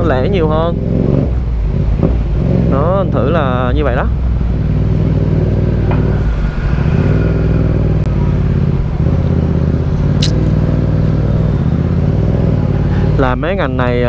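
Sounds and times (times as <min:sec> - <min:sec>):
motorcycle engine running: 0:00.0 - 0:06.4, 0:07.0 - 0:13.2.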